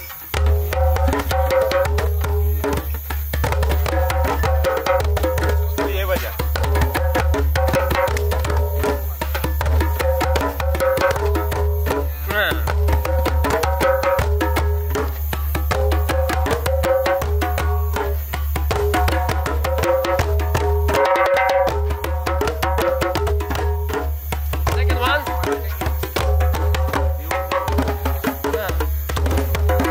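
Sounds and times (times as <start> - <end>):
djembes played by hand: 0.0 - 29.9.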